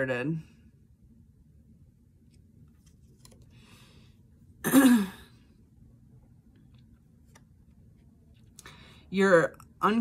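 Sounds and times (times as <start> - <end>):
woman clearing her throat: 4.6 - 5.4.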